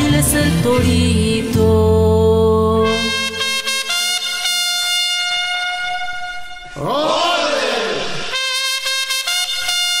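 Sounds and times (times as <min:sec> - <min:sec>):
person singing: 0:00.0 - 0:03.4
brass band holding a chord: 0:02.8 - 0:10.0.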